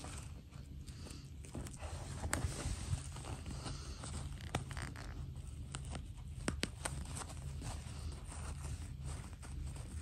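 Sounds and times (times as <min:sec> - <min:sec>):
fingers rustling fabric: 0:00.0 - 0:10.0.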